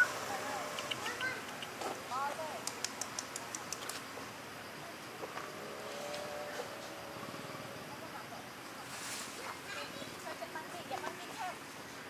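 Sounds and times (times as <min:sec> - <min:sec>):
sharp high-pitched ticks: 0:00.7 - 0:01.8, 0:02.6 - 0:04.0.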